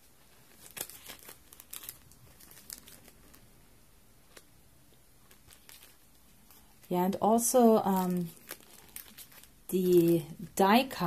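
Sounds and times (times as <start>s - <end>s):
plastic bag crinkling: 0.3s - 3.6s, 5.2s - 11.0s.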